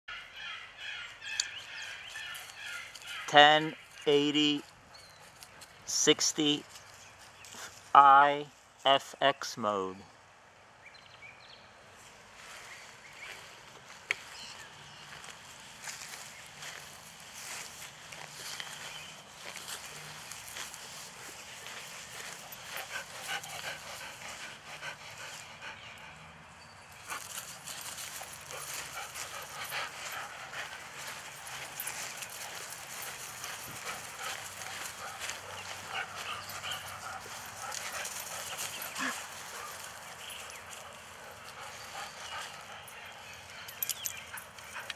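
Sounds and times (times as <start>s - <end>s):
dog moving on grass: 12.2s - 24.4s, 27.0s - 42.7s.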